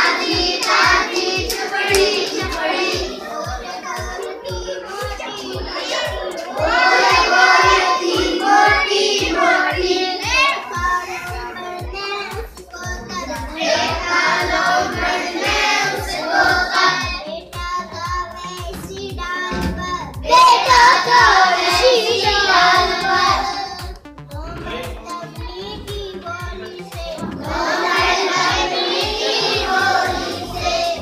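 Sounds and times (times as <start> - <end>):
girl singing in chanting tune: 0.0 - 23.9, 24.5 - 31.0
steady low beat: 0.0 - 31.0.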